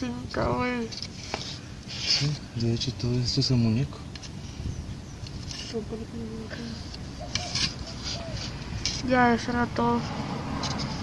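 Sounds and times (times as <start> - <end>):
low outdoor rumble: 0.0 - 11.0
soft hisses: 0.6 - 3.2.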